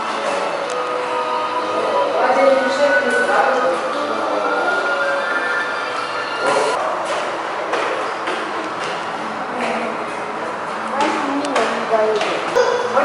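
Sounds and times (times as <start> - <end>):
background music long tones: 0.0 - 6.8.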